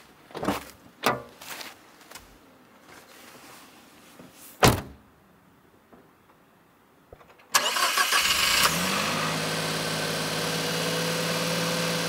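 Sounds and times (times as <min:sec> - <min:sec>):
truck door shutting thump: 0:04.6 - 0:05.0.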